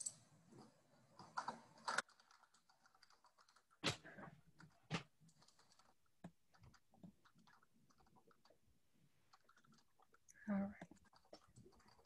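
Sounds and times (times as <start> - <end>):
faint keyboard typing: 0.5 - 12.0.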